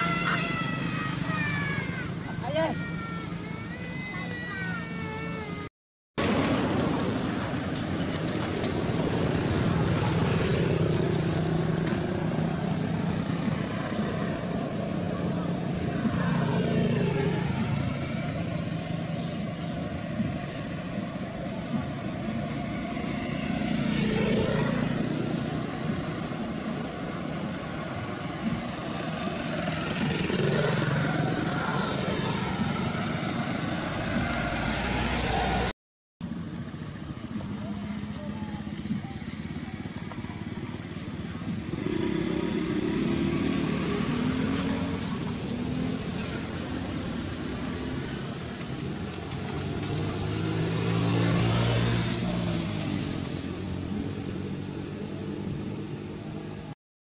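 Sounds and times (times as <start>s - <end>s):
passing motor vehicles: 0.0s - 5.6s, 6.2s - 56.8s.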